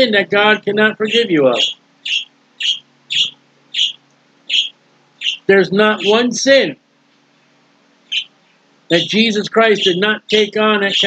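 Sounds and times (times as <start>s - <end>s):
faint low hum: 0.0s - 11.0s
small bird chirping: 0.5s - 6.2s, 8.0s - 11.0s.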